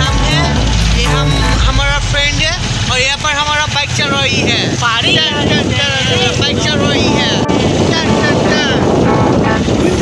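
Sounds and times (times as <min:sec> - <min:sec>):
motorcycle engines: 0:00.0 - 0:10.0
wind buffeting microphone: 0:01.7 - 0:10.0.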